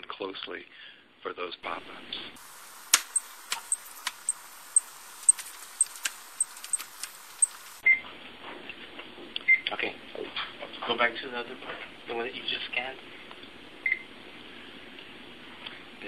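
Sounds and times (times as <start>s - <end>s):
barcode scanner beeping: 3.0s - 7.8s.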